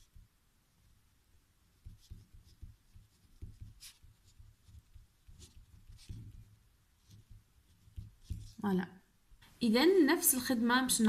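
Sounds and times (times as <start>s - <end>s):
pen scratching on paper: 1.7s - 8.6s.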